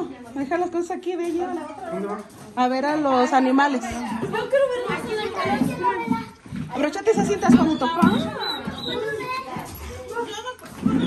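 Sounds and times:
indistinct talking: 0.0 - 11.0
children's voices: 3.4 - 11.0.

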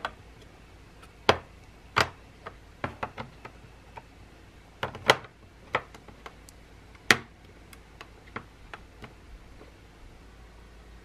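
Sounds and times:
small pots clicking on acrylic: 4.8 - 9.2.

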